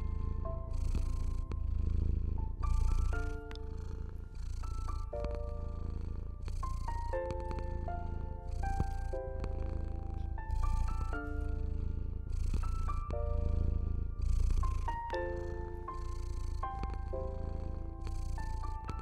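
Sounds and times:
cat purring: 0:00.0 - 0:19.0
gentle piano melody: 0:00.0 - 0:19.0.

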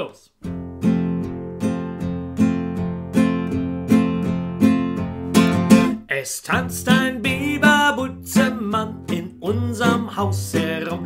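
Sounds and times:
classical guitar strumming: 0:00.4 - 0:11.0.

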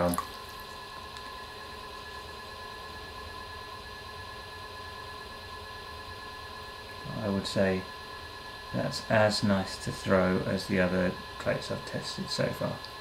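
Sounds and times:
potter's wheel humming: 0:00.0 - 0:13.0
thin constant whine: 0:00.0 - 0:13.0.

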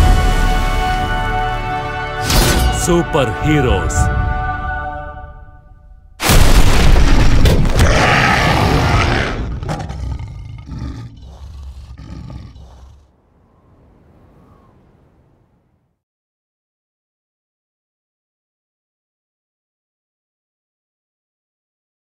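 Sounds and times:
deep bear roar: 0:07.6 - 0:15.4.

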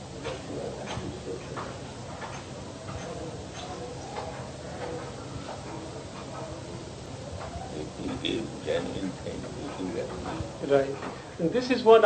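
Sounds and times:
recording hiss and hum: 0:00.0 - 0:12.0.

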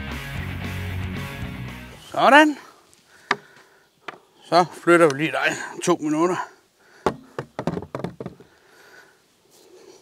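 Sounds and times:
wooden stool knocking on table: 0:07.0 - 0:08.4.

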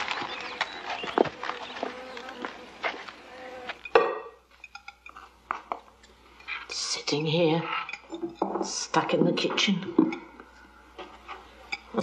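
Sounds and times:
birds calling: 0:00.0 - 0:04.4
footsteps on a path: 0:00.0 - 0:04.6
plates and cutlery clinking: 0:03.7 - 0:06.6, 0:07.2 - 0:12.0.

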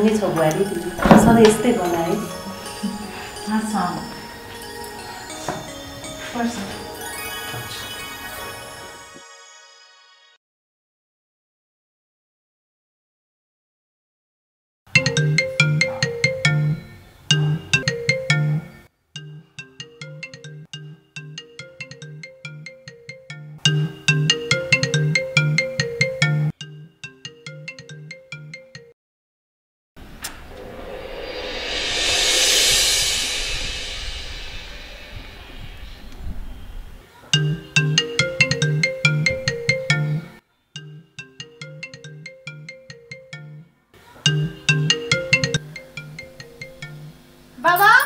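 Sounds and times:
phone ringtone melody: 0:00.0 - 0:08.8, 0:14.9 - 0:29.0, 0:37.4 - 0:48.0.

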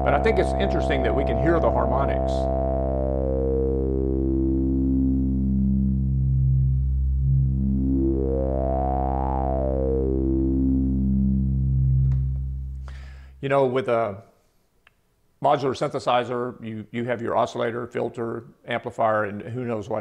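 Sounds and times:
synthesizer filter sweep: 0:00.0 - 0:13.4.

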